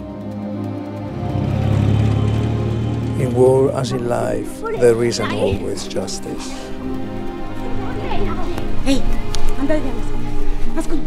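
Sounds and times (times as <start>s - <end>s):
motorcycle engine passing: 0.0s - 8.8s
low music soundtrack: 0.0s - 11.0s.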